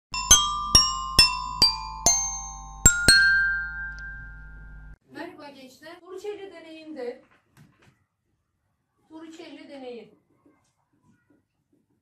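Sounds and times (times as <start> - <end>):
glassy chime notes: 0.1 - 5.0.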